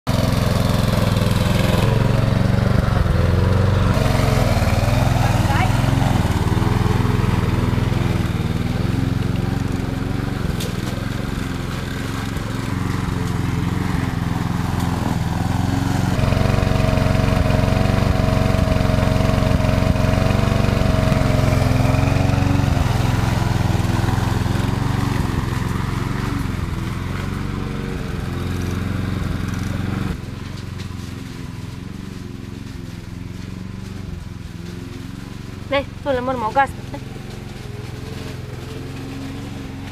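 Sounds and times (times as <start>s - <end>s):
petrol lawn mower cutting grass: 0.0s - 39.9s.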